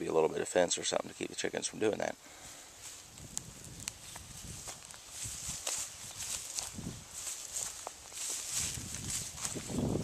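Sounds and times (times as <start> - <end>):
faint background hiss: 0.0 - 9.2
footsteps on dry soil and grass: 2.4 - 10.0.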